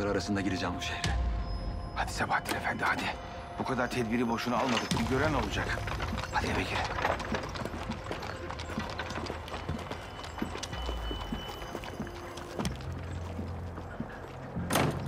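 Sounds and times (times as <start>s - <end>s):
hooves on cobblestones: 2.5s - 15.0s.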